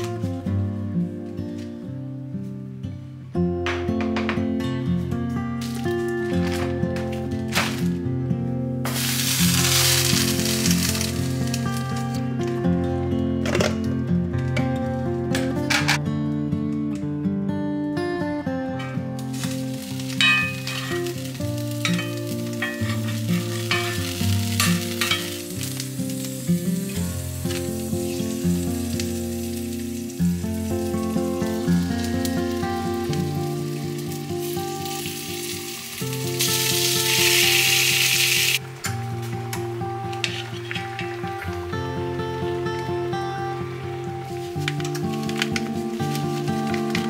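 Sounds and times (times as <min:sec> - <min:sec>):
background music: 0:00.0 - 0:47.0
chicken sizzling in a skillet: 0:08.8 - 0:12.2, 0:19.2 - 0:38.6, 0:44.2 - 0:47.0.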